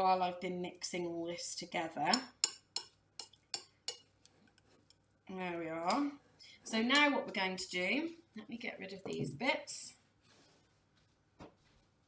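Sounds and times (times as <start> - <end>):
metal spoon clinking glass bowl: 2.1 - 4.1.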